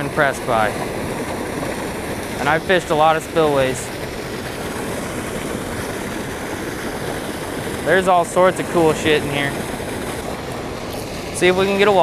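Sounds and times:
water pouring into pool: 0.0s - 12.0s.

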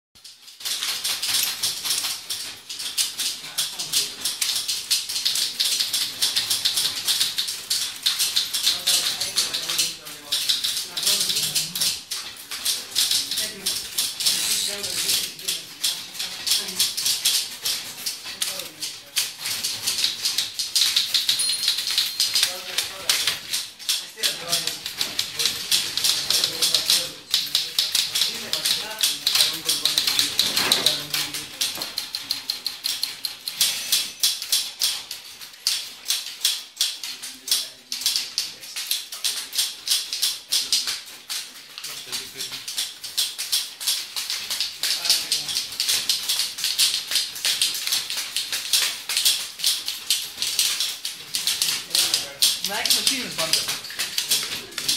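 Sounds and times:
typewriters clattering: 0.2s - 54.9s.

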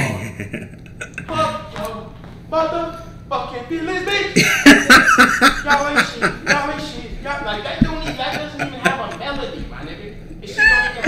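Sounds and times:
man's high-pitched squealing laugh: 10.4s - 11.0s.

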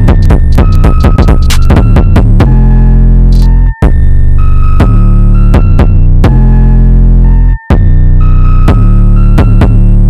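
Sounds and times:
heavy bass: 0.0s - 10.0s.

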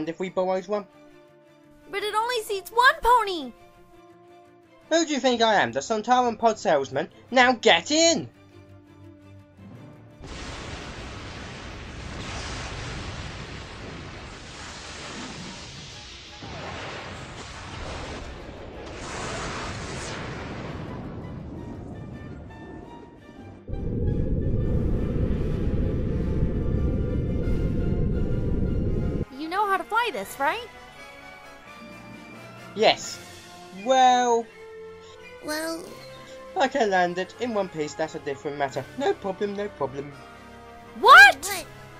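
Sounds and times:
loud steady low rumble: 23.7s - 29.2s.

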